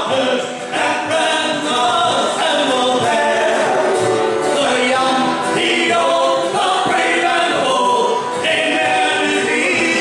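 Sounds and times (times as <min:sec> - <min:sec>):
folk band singing a ballad: 0:00.0 - 0:10.0.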